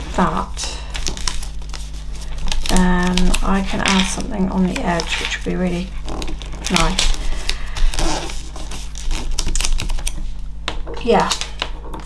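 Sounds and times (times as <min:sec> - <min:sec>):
paper rustling: 0:00.0 - 0:10.4.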